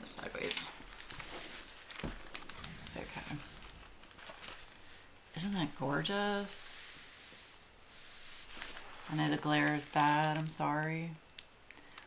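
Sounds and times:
plastic film crinkling: 0:00.0 - 0:06.6, 0:08.2 - 0:12.0.

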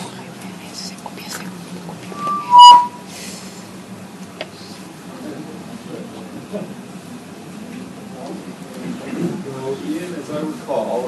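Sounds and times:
microphone feedback squeal: 0:02.0 - 0:03.1.

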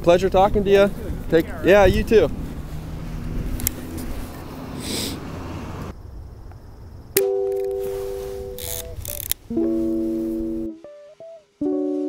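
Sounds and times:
low outdoor rumble: 0:00.0 - 0:07.2
music of held pitched notes: 0:07.2 - 0:12.0.

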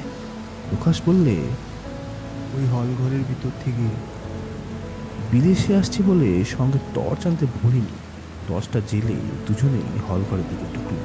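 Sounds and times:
low music drone: 0:00.0 - 0:11.0
steady rain: 0:00.0 - 0:11.0.

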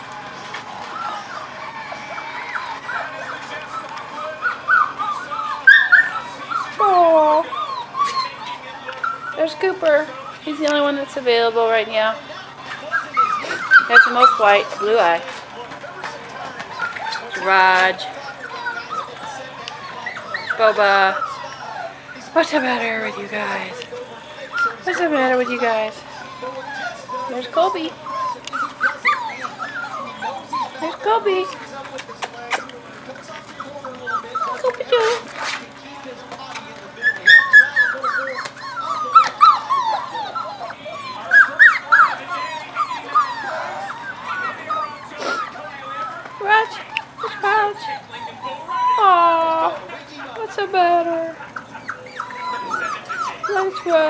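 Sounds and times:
puppies whimpering and yipping: 0:00.0 - 0:54.0.

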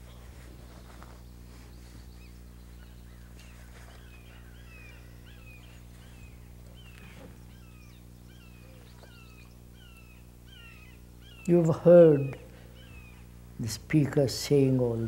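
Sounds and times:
low electrical hum: 0:00.0 - 0:15.0
bird chirping: 0:00.1 - 0:13.4.

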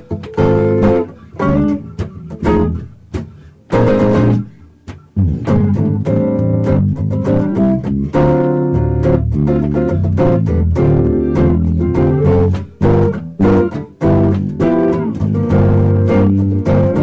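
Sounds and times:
electric bass line: 0:00.0 - 0:17.0
electric guitar chords: 0:00.0 - 0:17.0.

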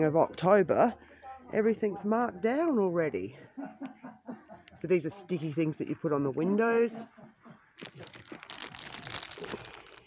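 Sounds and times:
plastic packaging crinkling: 0:07.8 - 0:10.0.

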